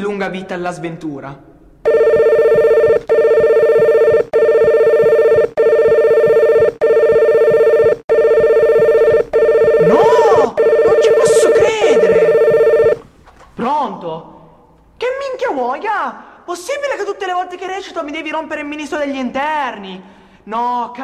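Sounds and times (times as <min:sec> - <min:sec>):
mobile phone ringing: 0:01.9 - 0:13.0.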